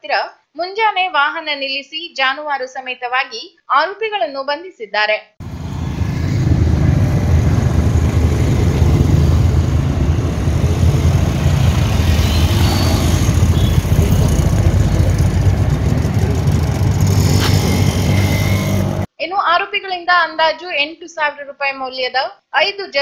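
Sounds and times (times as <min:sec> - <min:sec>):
vehicle engine rumbling: 0:05.4 - 0:19.1.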